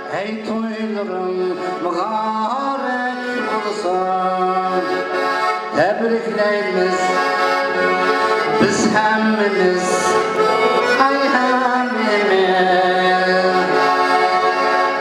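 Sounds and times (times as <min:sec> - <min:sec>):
man singing: 0:00.0 - 0:14.2
button accordion playing: 0:00.0 - 0:15.0.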